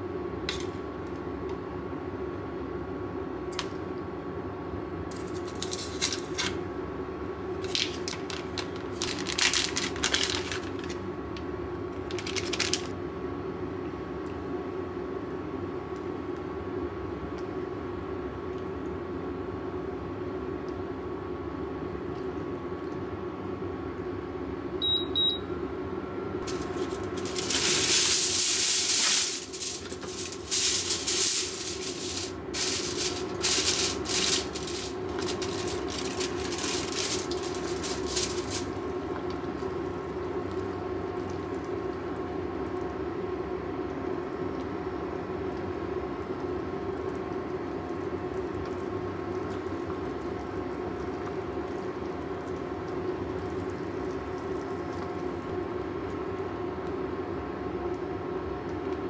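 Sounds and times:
cooktop hum: 0.0 - 59.0
aluminium foil crinkling: 5.1 - 6.6, 7.6 - 11.0, 12.0 - 13.0, 26.5 - 38.9
cooktop beeps: 24.8 - 25.5.

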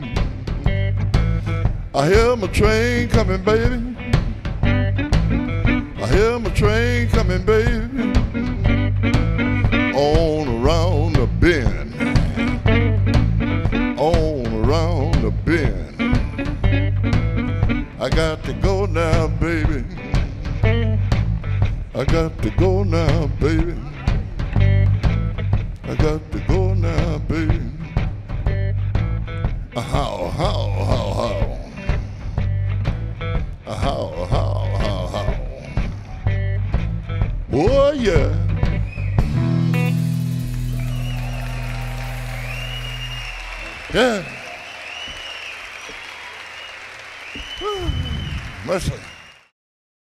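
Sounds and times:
electric guitar fill: 0.0 - 45.4
drums and bass: 0.0 - 49.2
person singing: 2.0 - 4.1, 5.4 - 13.0, 13.8 - 16.7, 17.8 - 20.8, 22.0 - 24.4, 25.8 - 27.9, 29.8 - 32.4, 33.6 - 36.3, 37.5 - 38.7
long high whistle: 38.9 - 49.5
audience applauding: 40.0 - 49.5
person shouting: 47.6 - 48.1.

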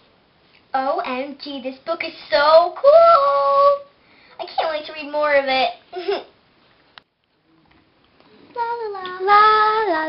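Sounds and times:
girl singing long held notes: 2.6 - 4.0, 8.4 - 10.0.

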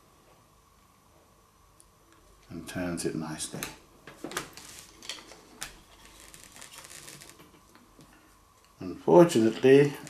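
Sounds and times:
faint rustling: 4.4 - 8.3.

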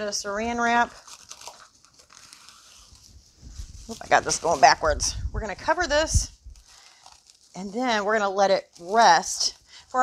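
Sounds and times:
plastic wrap crinkling: 0.0 - 10.0.

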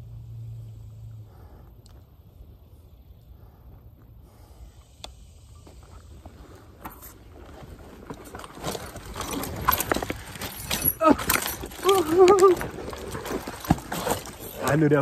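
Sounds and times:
bike rattling over rough trail: 5.6 - 15.0
person exclaiming: 11.0 - 12.6.

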